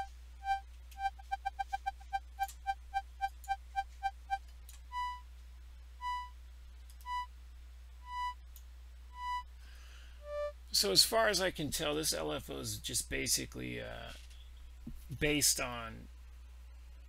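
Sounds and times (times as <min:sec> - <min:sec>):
higher longer beep: 0:00.0 - 0:02.2, 0:06.0 - 0:06.3, 0:07.1 - 0:07.3, 0:08.1 - 0:08.4, 0:09.2 - 0:09.4, 0:10.2 - 0:10.5
synth organ beeps: 0:00.0 - 0:05.2, 0:06.0 - 0:06.3, 0:07.1 - 0:07.3, 0:08.0 - 0:08.4, 0:09.2 - 0:09.4, 0:10.2 - 0:10.5.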